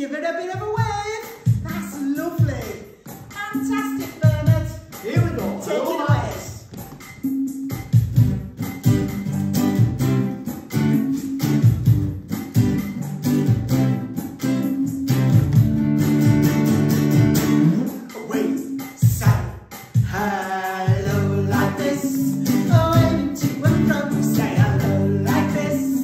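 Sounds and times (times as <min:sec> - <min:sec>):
acoustic guitar strumming chords: 0:03.0 - 0:19.2, 0:20.0 - 0:26.0.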